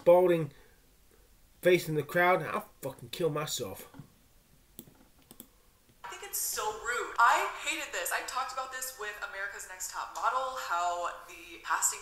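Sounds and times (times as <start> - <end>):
faint mouse clicks: 4.8 - 5.5.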